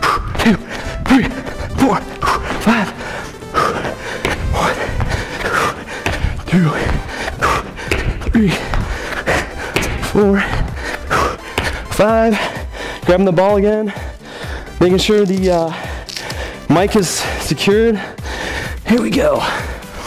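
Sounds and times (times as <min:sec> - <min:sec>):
background music: 0:00.0 - 0:20.0
hard breathing: 0:00.0 - 0:20.0
feet thudding on gym floor: 0:03.6 - 0:12.0.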